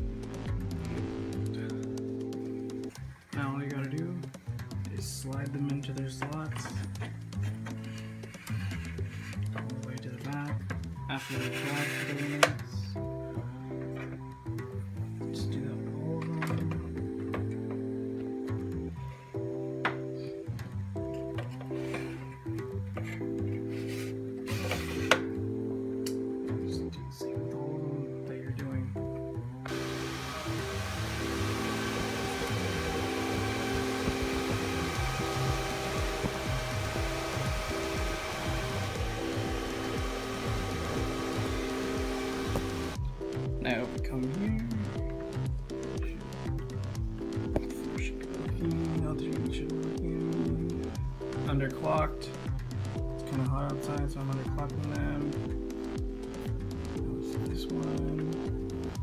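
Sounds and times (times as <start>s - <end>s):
background music: 0.0s - 59.0s
cooling fans rushing: 29.7s - 43.0s.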